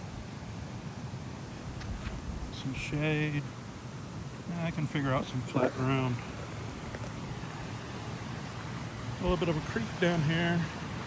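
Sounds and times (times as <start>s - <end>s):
creek running over rocks: 0.0s - 11.0s.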